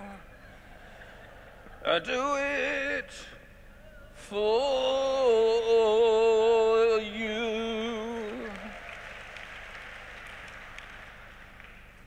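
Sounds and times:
audience applause: 8.1 - 12.0.

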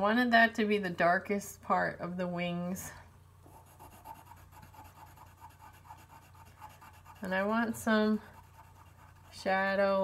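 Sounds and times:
pencil shading on paper: 3.5 - 9.6.

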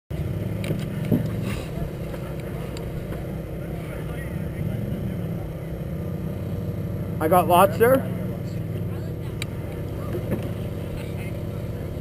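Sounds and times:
snowmobile engine idling: 0.2 - 12.0.

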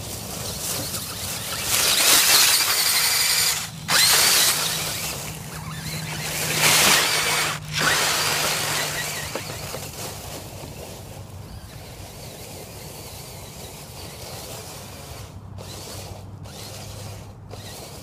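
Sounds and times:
leaves rustling under wheels: 0.0 - 18.0
toy car motor whine: 0.0 - 18.0.

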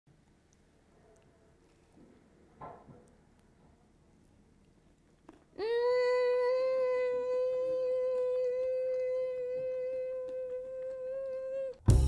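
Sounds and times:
woman humming mmm: 5.6 - 12.0.

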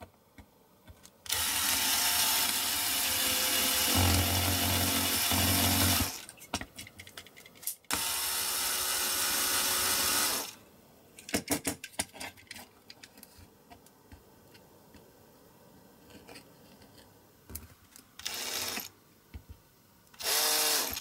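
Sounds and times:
power drill drilling metal: 1.3 - 6.2, 7.9 - 10.6, 18.2 - 18.9, 20.2 - 21.0
handling clicks and knocks: 6.3 - 7.9.

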